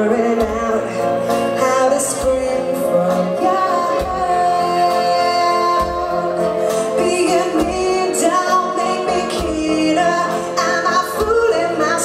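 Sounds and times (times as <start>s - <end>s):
drums and cymbals: 0.0s - 12.0s
woman singing lead: 0.0s - 12.0s.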